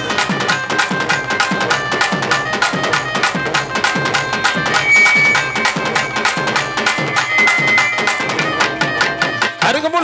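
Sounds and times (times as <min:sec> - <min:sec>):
held melody note: 0:04.4 - 0:09.0.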